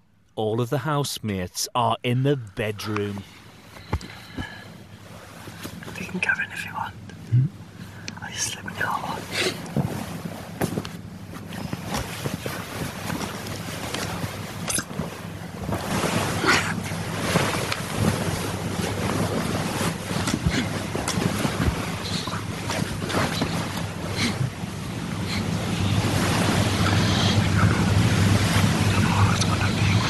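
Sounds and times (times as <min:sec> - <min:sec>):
low hum: 0:00.0 - 0:30.0
bedding rustling: 0:03.2 - 0:06.3, 0:08.9 - 0:26.9.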